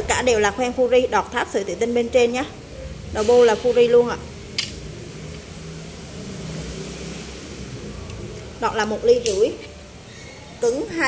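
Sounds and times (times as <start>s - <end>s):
vehicle engine humming: 0.0s - 11.0s.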